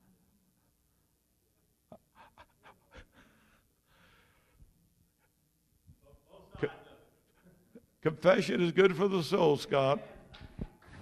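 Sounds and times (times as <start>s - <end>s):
faint breathy laughter: 1.9s - 4.3s.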